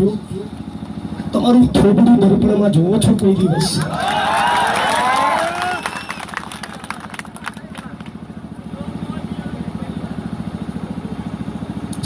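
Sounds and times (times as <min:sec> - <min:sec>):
engine idling: 0:04.8 - 0:12.0.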